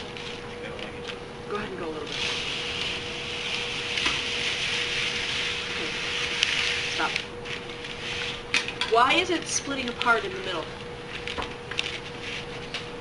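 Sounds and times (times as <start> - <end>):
paper strips sliding: 2.1 - 8.4, 11.8 - 12.8.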